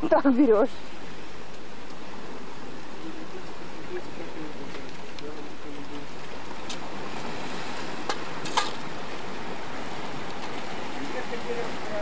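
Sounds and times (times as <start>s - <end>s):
wind: 0.0s - 12.0s
sea surf: 0.4s - 12.0s.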